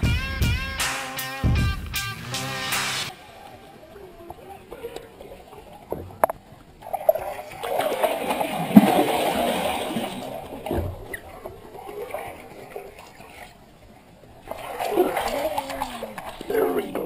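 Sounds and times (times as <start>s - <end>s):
fish thrashing and splashing water: 3.4s - 13.6s, 14.4s - 17.0s.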